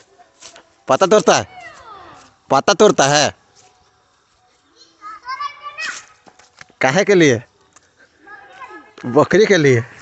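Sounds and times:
children calling out: 0:01.4 - 0:02.3, 0:04.8 - 0:06.2.

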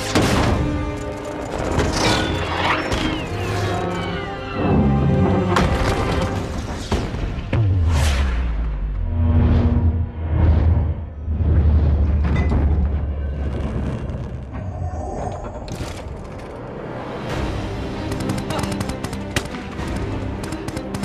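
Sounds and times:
dramatic music: 0:00.0 - 0:21.0.

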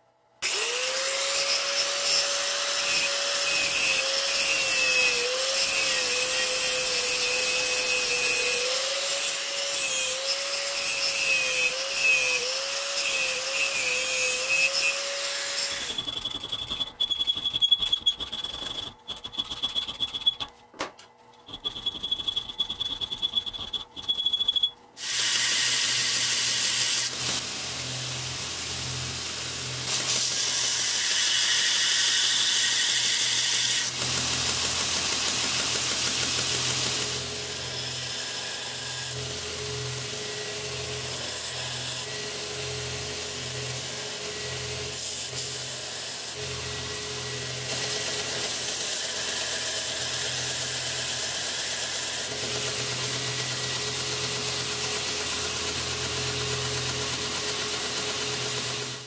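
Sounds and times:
angle grinder cutting steel: 0:00.4 - 0:17.0, 0:24.4 - 0:59.0
belt grinder grinding: 0:00.4 - 0:20.5, 0:29.3 - 0:59.0.

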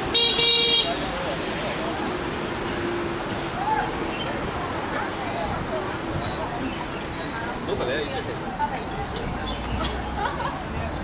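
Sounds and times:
city traffic noise: 0:00.0 - 0:11.0
high-pitched vehicle horn honking: 0:00.1 - 0:01.0.

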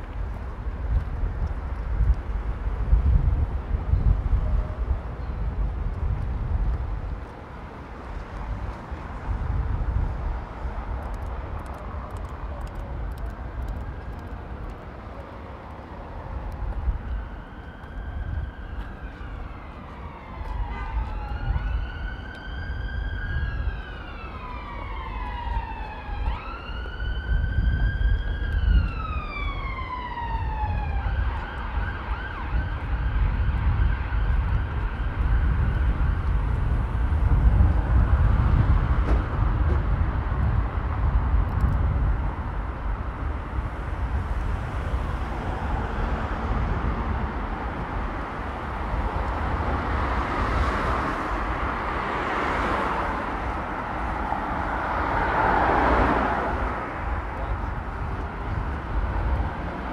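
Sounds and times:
city traffic noise: 0:00.0 - 0:59.9
wind rumble on microphone: 0:00.0 - 0:59.9
emergency vehicle siren wailing: 0:08.0 - 0:59.9.

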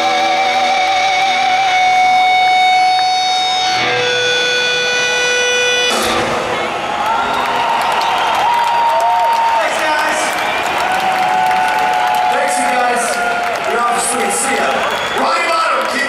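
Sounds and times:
rock band holding a chord: 0:00.0 - 0:08.0
large crowd cheering: 0:00.6 - 0:16.0.

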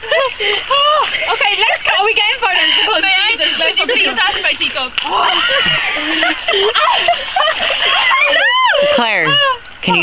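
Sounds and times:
water splashing: 0:00.0 - 0:10.0
women laughing and exclaiming: 0:00.0 - 0:10.0.

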